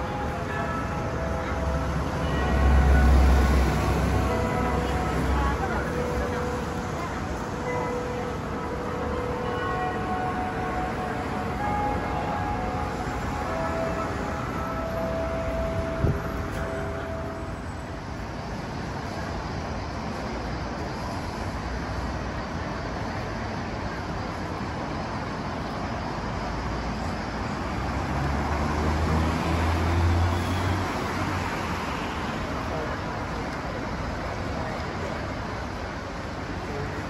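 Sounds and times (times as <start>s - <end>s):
street traffic passing: 0.0s - 37.0s.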